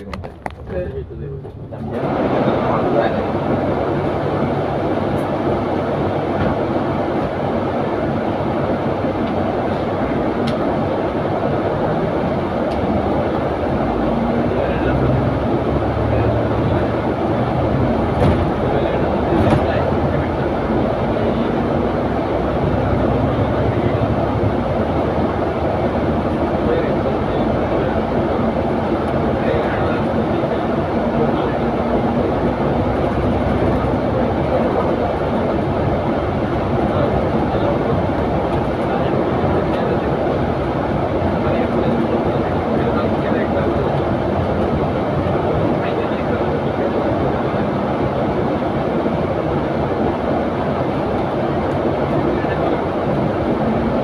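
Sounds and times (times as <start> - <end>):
bus engine and tyre rumble: 0.0 - 54.0.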